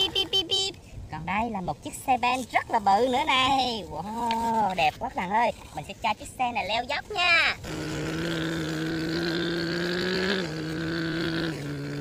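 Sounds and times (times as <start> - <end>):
imitation truck engine drone: 7.6 - 12.0.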